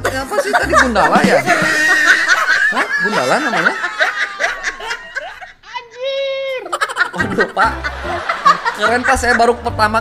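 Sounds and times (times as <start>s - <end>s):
woman laughing hard: 0.2s - 9.4s.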